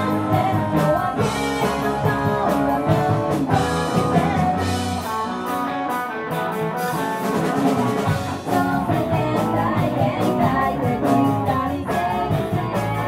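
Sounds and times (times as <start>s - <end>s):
drum kit beat: 0.0s - 13.0s
electric bass: 0.0s - 13.0s
electric guitar: 0.0s - 13.0s.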